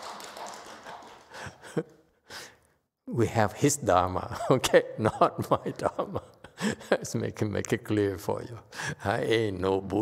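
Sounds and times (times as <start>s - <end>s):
man laughing softly: 1.3s - 2.0s.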